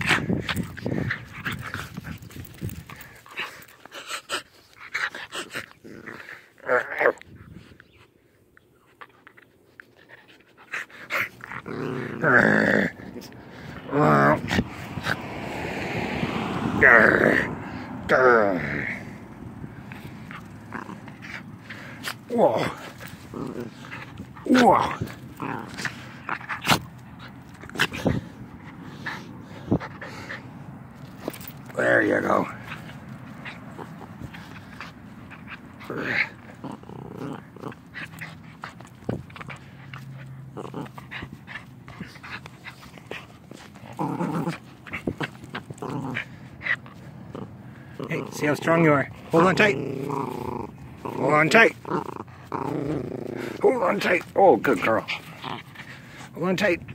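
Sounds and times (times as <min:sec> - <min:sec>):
dog growling: 0:00.0 - 0:07.2, 0:10.7 - 0:15.3, 0:16.2 - 0:30.4, 0:31.1 - 0:56.9.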